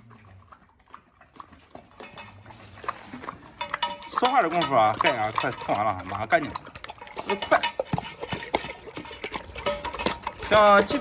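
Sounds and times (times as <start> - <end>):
dog chewing and lapping: 0.0 - 11.0.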